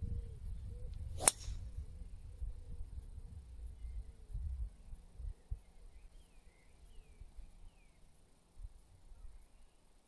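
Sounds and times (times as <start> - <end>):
golf club striking ball: 1.2 - 1.6.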